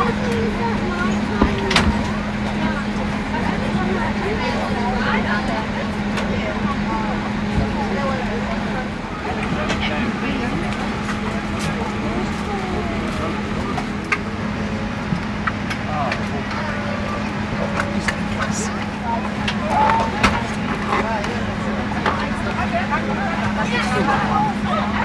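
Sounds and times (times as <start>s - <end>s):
aircraft systems humming: 0.0s - 25.0s
passenger chatter: 0.0s - 25.0s.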